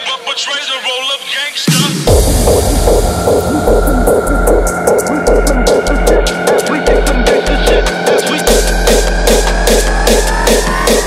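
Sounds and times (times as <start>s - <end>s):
distorted kick and bass beat: 1.7s - 11.0s
sustained high synth tone: 2.1s - 9.2s.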